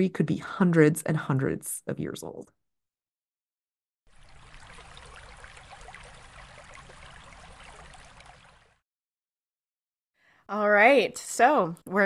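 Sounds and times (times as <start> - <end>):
water trickling and splashing: 4.1 - 8.8.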